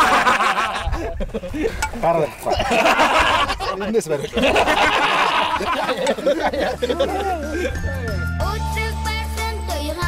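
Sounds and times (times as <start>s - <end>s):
men laughing loudly: 0.0s - 8.2s.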